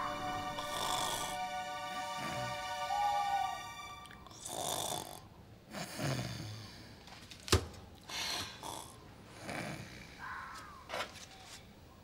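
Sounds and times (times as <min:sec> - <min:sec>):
girl snoring: 0:00.6 - 0:01.4, 0:04.3 - 0:06.8, 0:08.4 - 0:10.2.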